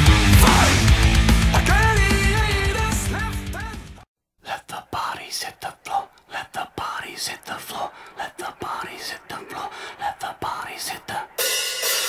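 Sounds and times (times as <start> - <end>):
person whispering: 4.4 - 11.4.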